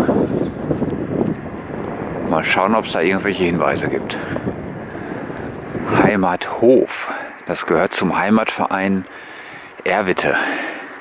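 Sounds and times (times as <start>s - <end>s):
wind on microphone: 0.0s - 7.4s.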